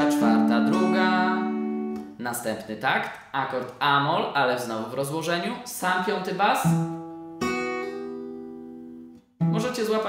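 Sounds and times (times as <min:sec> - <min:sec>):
man's voice: 0:00.0 - 0:01.6.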